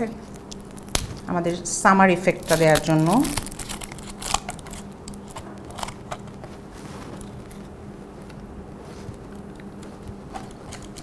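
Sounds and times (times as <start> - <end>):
paper crinkles: 2.2 - 7.8.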